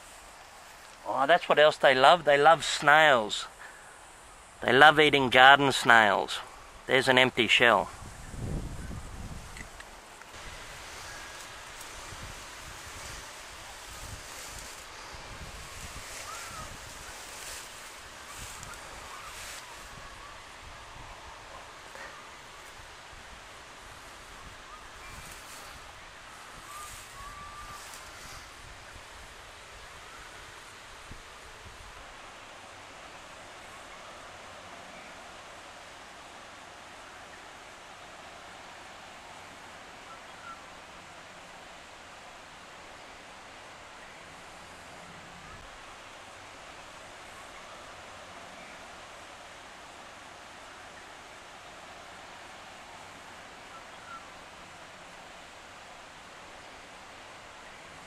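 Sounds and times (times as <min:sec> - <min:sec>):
dry straw rustling: 0:00.0 - 0:01.5, 0:07.9 - 0:32.0
outdoor hiss: 0:00.0 - 0:58.0
wind buffeting microphone: 0:07.9 - 0:21.5.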